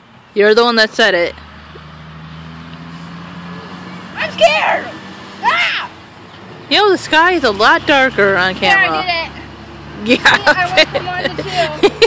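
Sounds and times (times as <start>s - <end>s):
faint outdoor background noise: 0.0s - 12.0s
low engine hum: 0.0s - 12.0s.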